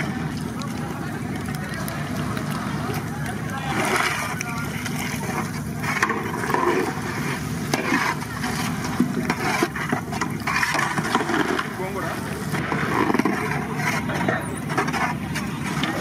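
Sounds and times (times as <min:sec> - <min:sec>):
people's voices: 0:00.0 - 0:16.0
prawns frying in oil: 0:00.0 - 0:16.0
steady low rumble: 0:00.0 - 0:16.0
metal ladle scraping a pan: 0:05.7 - 0:11.8.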